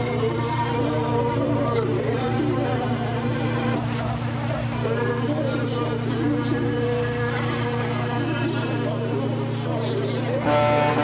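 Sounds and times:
low buzzing hum: 0:00.0 - 0:11.0.

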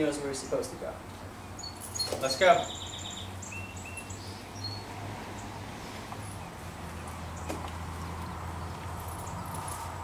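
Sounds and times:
high bird chirps: 0:01.5 - 0:04.9.

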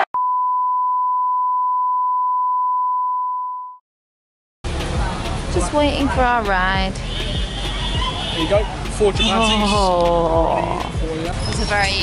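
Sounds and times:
long censor beep: 0:00.2 - 0:03.8.

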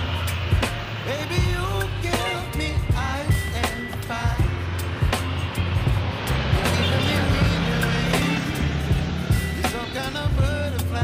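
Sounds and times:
song with heavy bass line: 0:00.0 - 0:11.0
vehicle passing on road: 0:00.0 - 0:11.0.

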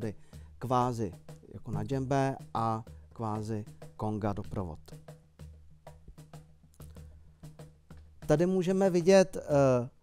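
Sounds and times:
light percussion taps: 0:01.3 - 0:02.2
low steady tone: 0:01.7 - 0:02.2.

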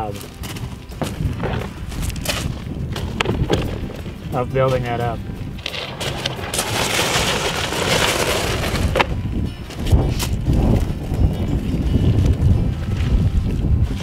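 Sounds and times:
crunching on gravel: 0:00.0 - 0:11.6
wind buffeting microphone: 0:00.0 - 0:14.0.

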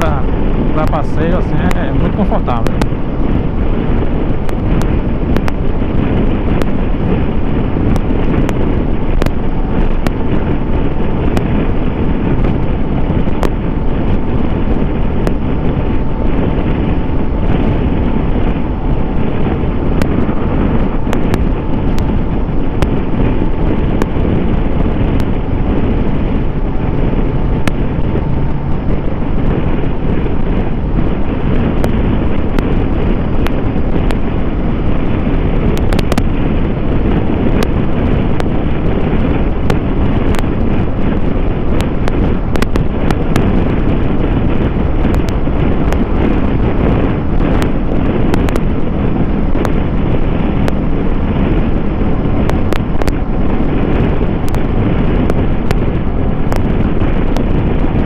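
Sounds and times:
wind rushing over microphone: 0:00.0 - 0:58.0
motorcycle engine: 0:01.7 - 0:58.0.

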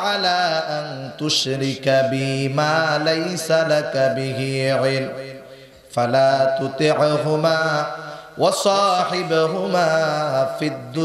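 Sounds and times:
man chanting through amplification: 0:00.0 - 0:11.0.

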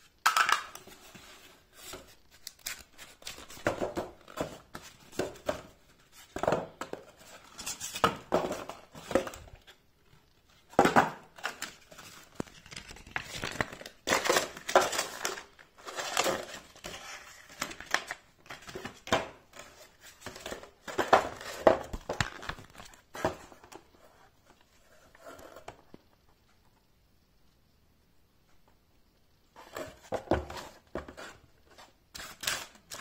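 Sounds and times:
cardboard and paper crinkling: 0:00.8 - 0:25.8.

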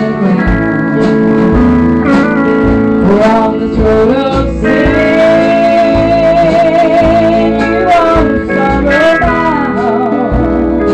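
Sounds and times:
country band playing: 0:00.0 - 0:10.9.

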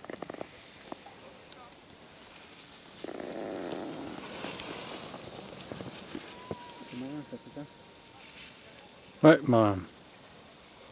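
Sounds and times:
ski edges scraping on snow: 0:02.2 - 0:07.6.

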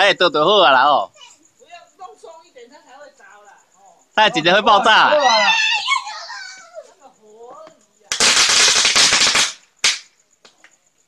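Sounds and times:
firecrackers popping: 0:07.6 - 0:10.9.

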